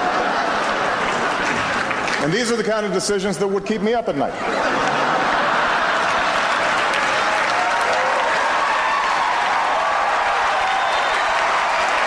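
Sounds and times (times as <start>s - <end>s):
audience applauding: 0.0s - 2.7s, 4.6s - 12.0s.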